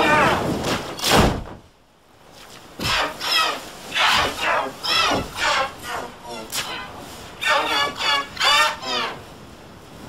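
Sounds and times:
high-pitched yells or squeals: 0.0s - 0.5s, 2.8s - 9.3s.

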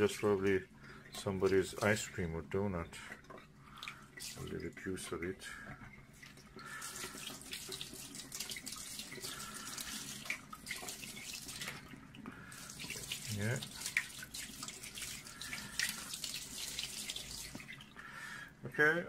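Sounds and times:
tap water splashing on glass: 6.2s - 18.0s.

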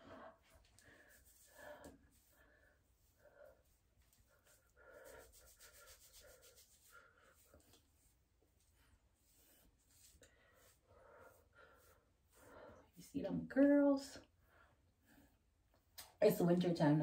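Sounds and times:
fingers rubbing damp hair: 4.0s - 12.4s.

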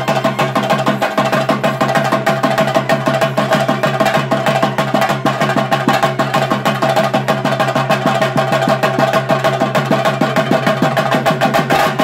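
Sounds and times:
drums beaten fast with sticks: 0.0s - 12.0s.

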